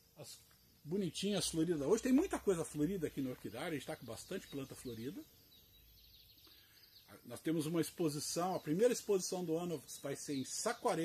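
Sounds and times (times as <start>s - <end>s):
man speaking: 0.2s - 5.3s, 7.1s - 11.0s.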